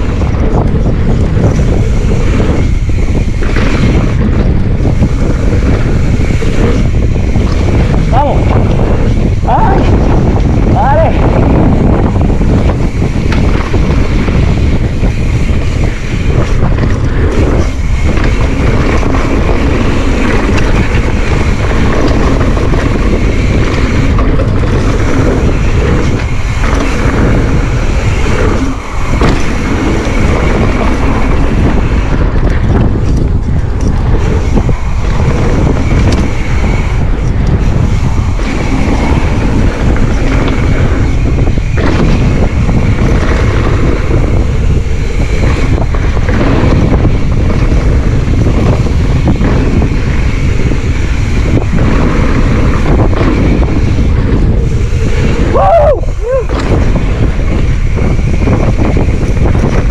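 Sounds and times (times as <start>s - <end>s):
bike rattling: 0.0s - 59.9s
tyres rumbling on dirt: 0.0s - 59.9s
wind rushing over microphone: 0.0s - 59.9s.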